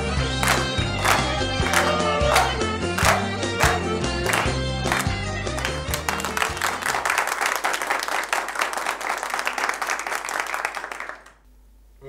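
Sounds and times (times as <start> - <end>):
crowd applauding: 0.0 - 11.4.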